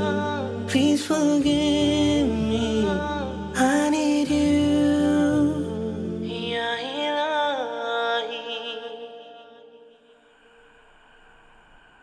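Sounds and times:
unaccompanied voices singing: 0.0 - 7.0
faint hiss: 10.0 - 12.0.

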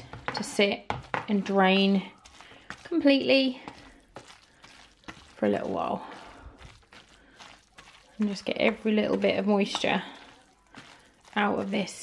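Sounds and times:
masher squashing bones and vegetables: 0.0 - 12.0.

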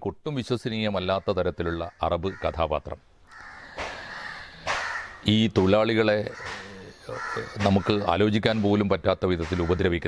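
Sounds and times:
crow cawing: 1.1 - 5.3, 6.1 - 8.3, 9.4 - 10.0.

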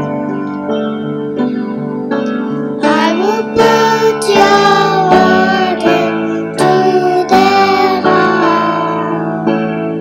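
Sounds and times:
instrumental accompaniment: 0.0 - 10.0
girl singing into a microphone: 2.8 - 9.6.

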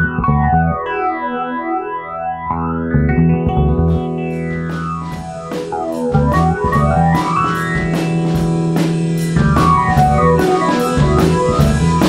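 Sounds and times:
instrumental rock band music: 0.0 - 12.0.

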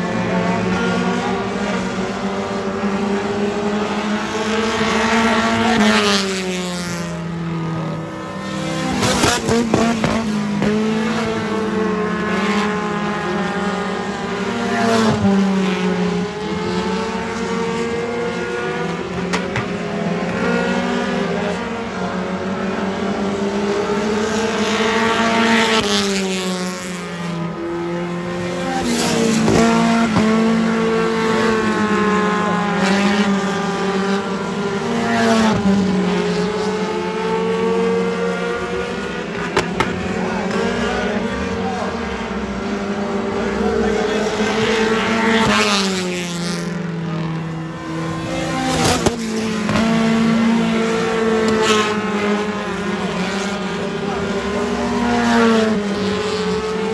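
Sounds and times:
cars passing by: 0.0 - 56.9
race car engines revving: 0.0 - 56.9.

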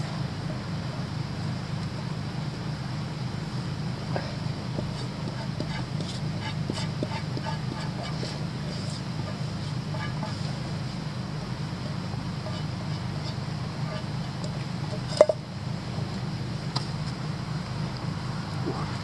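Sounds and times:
steady low hum: 0.0 - 19.0
embers crackling: 3.5 - 18.2.

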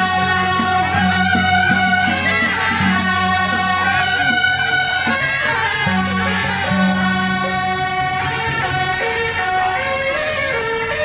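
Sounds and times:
trumpets playing long held notes: 0.0 - 11.0.

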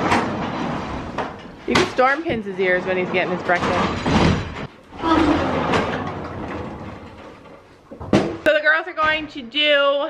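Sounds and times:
sliding door rolling on track: 0.0 - 7.7.

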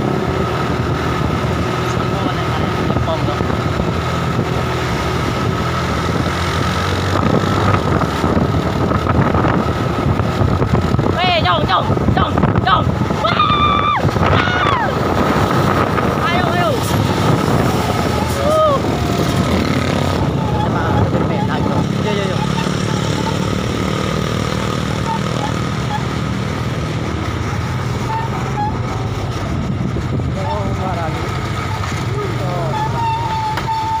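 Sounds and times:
truck engines running: 0.0 - 34.0
voices calling out: 11.3 - 26.3, 30.3 - 34.0.

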